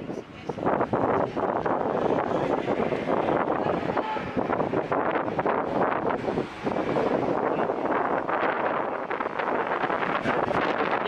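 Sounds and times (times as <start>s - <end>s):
traffic going by: 0.0s - 11.0s
wind on microphone: 0.0s - 11.0s.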